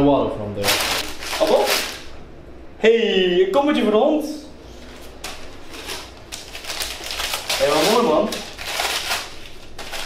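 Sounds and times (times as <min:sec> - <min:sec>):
tissue paper rustling and crinkling: 0:00.6 - 0:02.1, 0:05.0 - 0:10.0.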